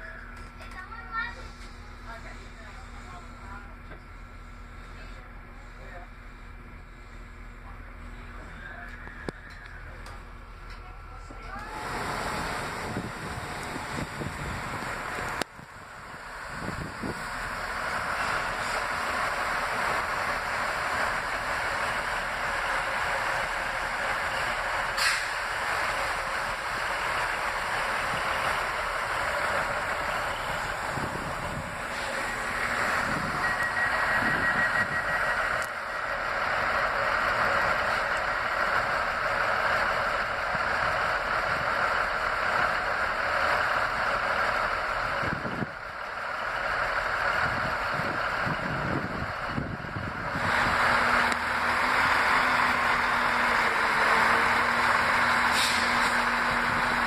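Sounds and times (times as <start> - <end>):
diesel train running: 0.0 - 57.0.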